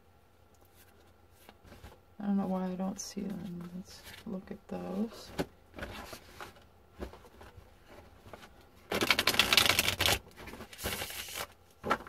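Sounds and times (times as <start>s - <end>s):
person speaking: 2.2s - 5.4s.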